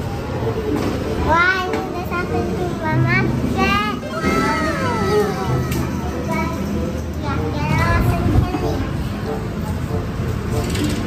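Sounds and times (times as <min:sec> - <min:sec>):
background music: 0:00.0 - 0:11.0
young children's voices: 0:01.2 - 0:09.2.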